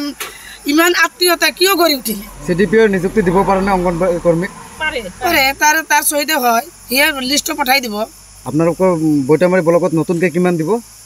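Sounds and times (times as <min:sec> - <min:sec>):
woman speaking: 0:00.0 - 0:02.4, 0:04.8 - 0:08.1
crickets chirping drone: 0:00.0 - 0:11.0.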